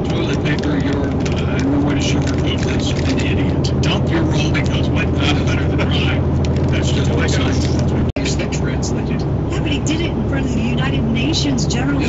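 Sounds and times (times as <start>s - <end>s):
person talking: 0.0s - 12.0s
vehicle drone on road: 0.0s - 12.0s.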